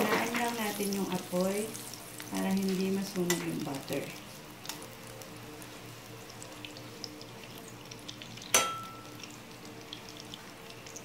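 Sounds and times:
butter sizzling in a pan: 0:00.0 - 0:11.0
metal spatula clinking on pan: 0:08.5 - 0:09.0.

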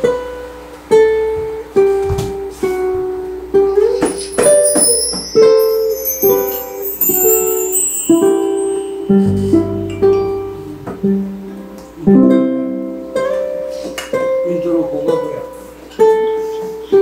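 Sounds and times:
high shimmering sound: 0:04.0 - 0:09.9
ukulele plucked notes: 0:04.0 - 0:13.7.

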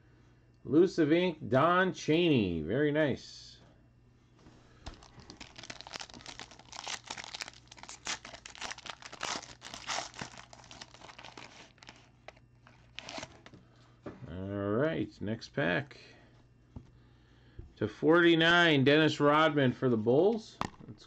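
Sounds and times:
faint steady hum: 0:00.0 - 0:21.0
foil wrapper tearing and crinkling: 0:04.9 - 0:13.5.

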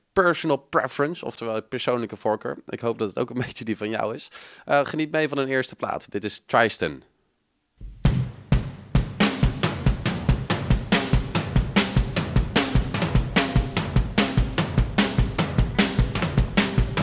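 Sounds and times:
drum kit steady beat: 0:07.8 - 0:17.0
bass guitar: 0:09.7 - 0:17.0.

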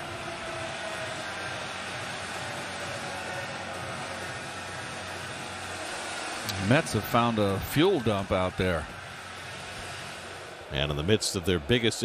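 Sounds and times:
ballpark ambience: 0:00.0 - 0:12.0.

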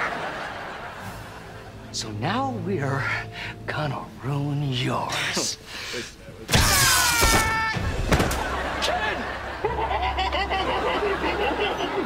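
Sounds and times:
falling wailing cry: 0:06.6 - 0:07.9.

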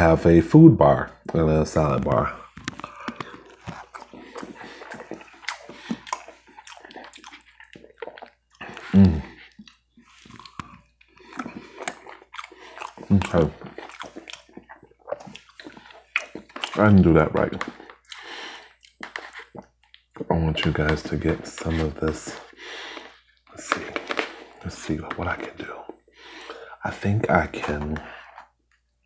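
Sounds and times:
close chewing with mouth smacks: 0:02.4 - 0:26.6
short vocal sounds: 0:08.6 - 0:09.4.

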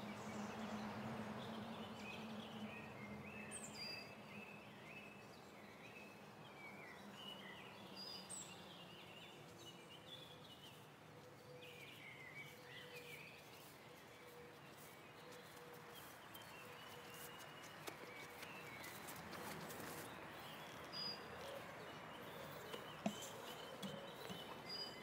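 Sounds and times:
birds chirping and warbling: 0:00.0 - 0:25.0.

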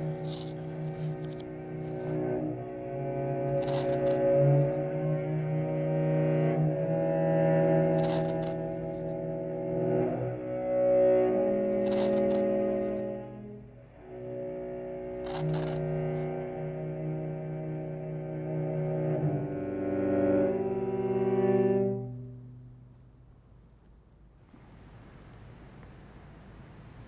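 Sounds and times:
cello playing sustained notes: 0:00.0 - 0:23.0.

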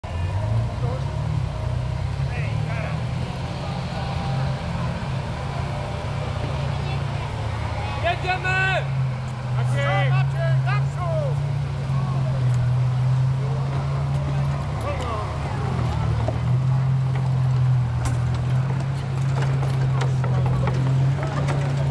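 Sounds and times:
engine idling: 0:00.0 - 0:21.9
people's voices: 0:00.0 - 0:21.9.

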